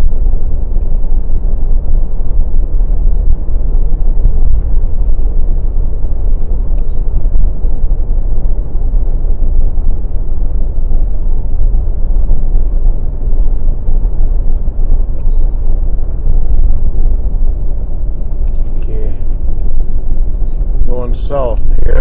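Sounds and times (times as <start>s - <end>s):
car driving at highway speed: 0.0s - 22.0s.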